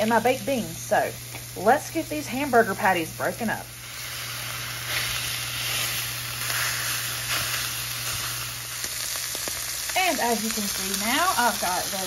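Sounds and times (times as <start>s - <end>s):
food sizzling in skillet: 0.0s - 12.0s.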